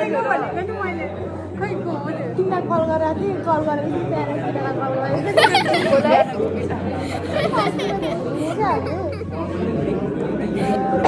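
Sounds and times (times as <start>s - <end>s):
young women chattering: 0.0s - 11.0s.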